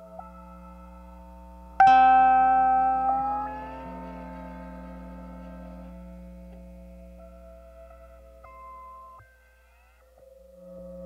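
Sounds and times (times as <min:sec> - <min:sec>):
steady low hum: 0:00.0 - 0:09.2
plucked lap steel guitar note: 0:01.8 - 0:09.0.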